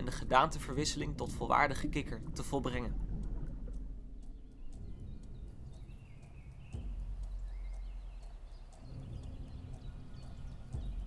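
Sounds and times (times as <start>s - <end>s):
low outdoor rumble: 0.0s - 11.0s
faint ticks: 2.2s - 11.0s
bird chirp: 3.7s - 11.0s.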